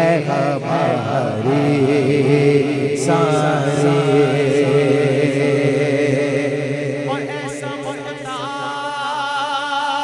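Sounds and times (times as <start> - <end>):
man singing ornamented melody: 0.0 - 10.0
vocal chorus humming drone: 0.0 - 10.0.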